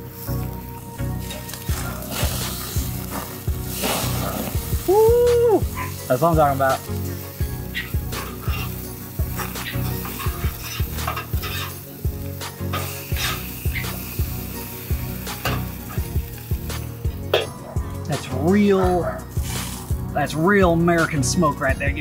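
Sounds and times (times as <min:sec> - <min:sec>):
meat sizzling on grill: 0:00.0 - 0:21.7
background music: 0:00.0 - 0:22.0
metal spatula scraping grate: 0:01.2 - 0:04.6, 0:07.7 - 0:11.9, 0:12.6 - 0:14.2, 0:15.2 - 0:16.1, 0:19.3 - 0:20.0.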